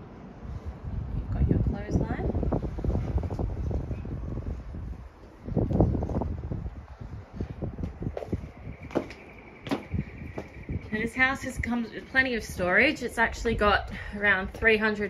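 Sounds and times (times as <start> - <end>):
wind buffeting microphone: 0.0 - 15.0
footsteps on concrete: 7.5 - 11.1, 13.0 - 15.0.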